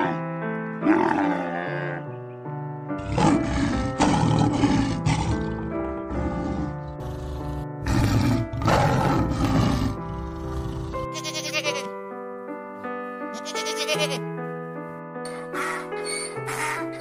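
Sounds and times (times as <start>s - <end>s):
light background music: 0.0s - 17.0s
tiger growling: 3.0s - 11.1s
goat bleats: 11.1s - 11.9s, 13.4s - 14.2s.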